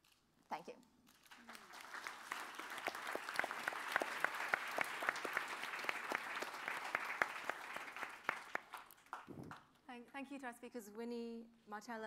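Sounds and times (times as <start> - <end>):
audience applauding: 1.2 - 9.7.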